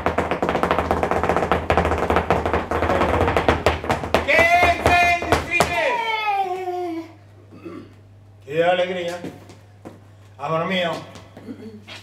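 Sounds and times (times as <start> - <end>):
dancer's shoes tapping on floor: 0.0 - 5.9, 9.1 - 10.1.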